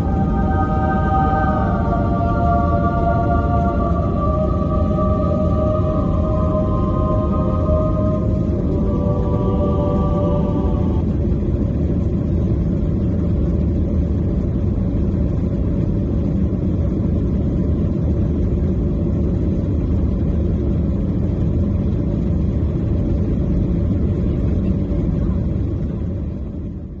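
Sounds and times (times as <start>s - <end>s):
jet engines rumbling in cabin: 0.0s - 27.0s.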